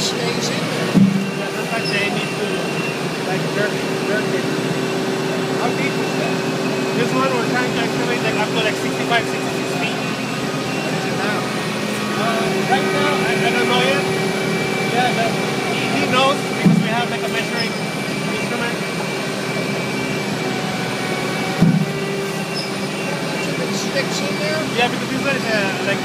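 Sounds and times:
diesel engine humming: 0.0 - 26.0.

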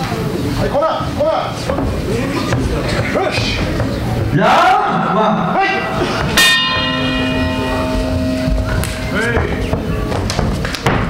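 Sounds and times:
boxing bell ringing: 5.8 - 10.4.

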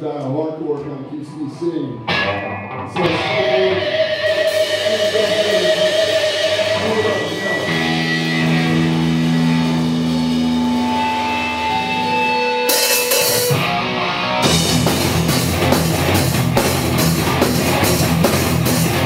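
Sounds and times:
guitar feedback: 0.6 - 19.0
electric guitars and bass ringing: 0.7 - 19.0
drums: 2.1 - 19.0.

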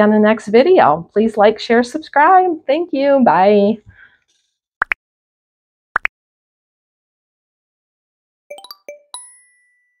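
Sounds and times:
rising chime notes: 8.5 - 9.9
bell-like ding: 8.5 - 10.0.

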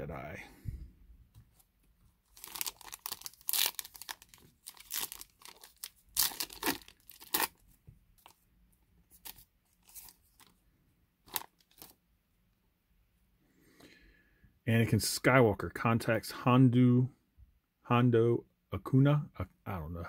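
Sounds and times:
foil wrapper crackling: 2.3 - 7.6, 11.3 - 11.9
cards clicking and rustling: 2.4 - 7.6.

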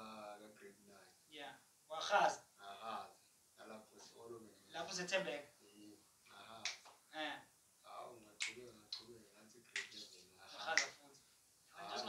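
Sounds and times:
man's voice: 0.0 - 1.0, 7.9 - 11.1, 11.8 - 12.0.

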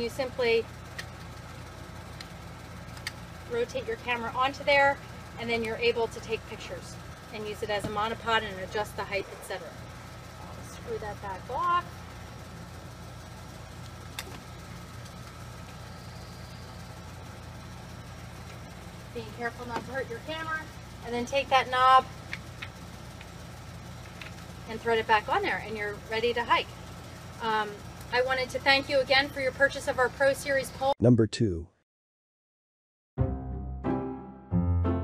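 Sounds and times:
low mechanical hum: 0.0 - 31.2.

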